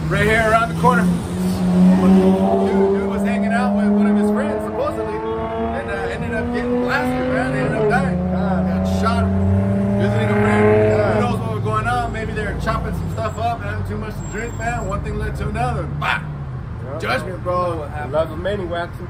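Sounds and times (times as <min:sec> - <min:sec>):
vehicle engine drone: 0:00.0 - 0:19.0
voices: 0:00.0 - 0:19.0.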